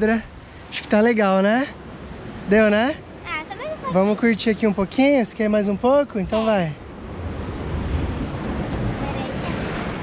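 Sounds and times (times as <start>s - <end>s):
surf on rocky shore: 0.0s - 10.0s
wind rumbling on microphone: 5.7s - 10.0s.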